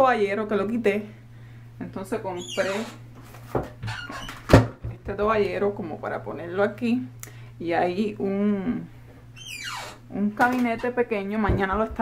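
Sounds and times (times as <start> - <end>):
steady low hum: 0.0 - 3.8, 4.4 - 12.0
dull knock: 11.4 - 12.0.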